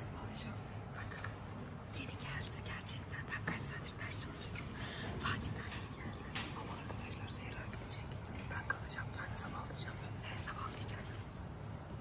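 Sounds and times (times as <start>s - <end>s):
person whispering: 0.0s - 11.3s
low room hum: 0.0s - 12.0s.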